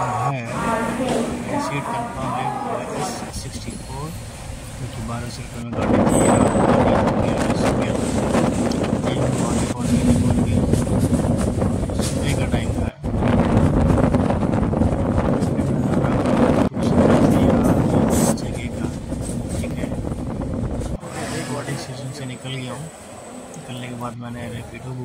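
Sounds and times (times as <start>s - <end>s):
wind buffeting microphone: 0.0s - 22.1s.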